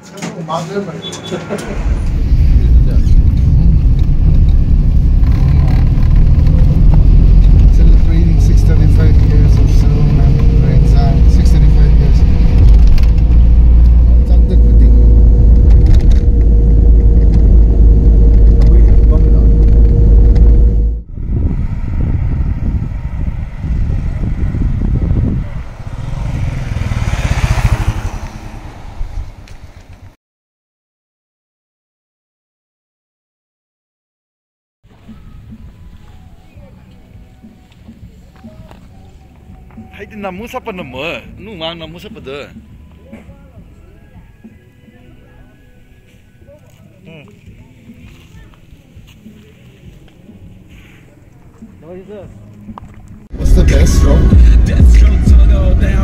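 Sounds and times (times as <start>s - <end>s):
quieter mixed sounds: 1.3s - 27.3s, 34.9s - 56.0s
car rumble from inside cabin: 1.6s - 25.7s, 53.3s - 56.0s.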